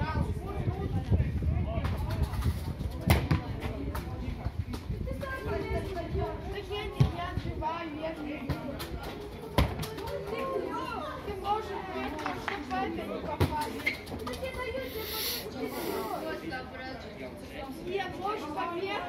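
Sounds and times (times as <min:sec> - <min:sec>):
boys calling and shouting: 0:00.0 - 0:19.0
ball being kicked: 0:02.9 - 0:04.1.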